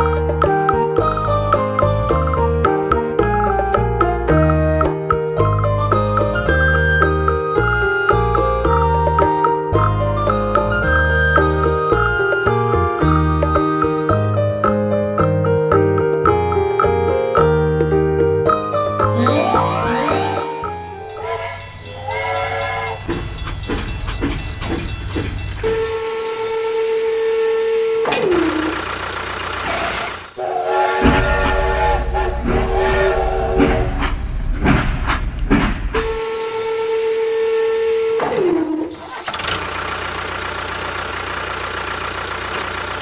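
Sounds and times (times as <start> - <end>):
toy train whistle tone: 19.0 - 23.1, 30.4 - 33.6
jingly electronic notes: 19.0 - 25.1.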